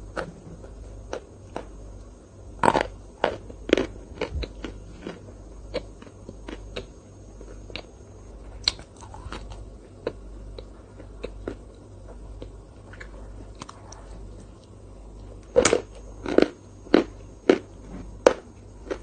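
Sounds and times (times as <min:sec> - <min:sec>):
crunchy eating sounds: 0:00.0 - 0:19.0.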